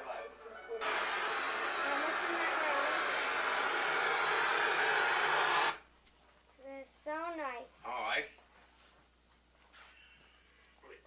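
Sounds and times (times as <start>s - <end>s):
loud static hiss: 0.8s - 5.9s.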